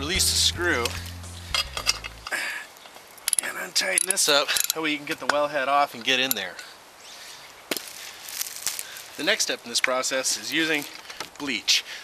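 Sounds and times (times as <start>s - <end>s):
metal tool clinking on screw: 1.5s - 2.2s, 3.2s - 5.3s, 6.0s - 6.7s.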